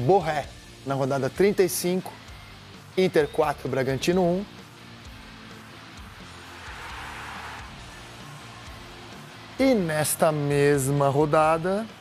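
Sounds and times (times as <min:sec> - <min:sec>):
background music with low notes: 0:00.0 - 0:12.0
rushing noise: 0:05.7 - 0:09.4.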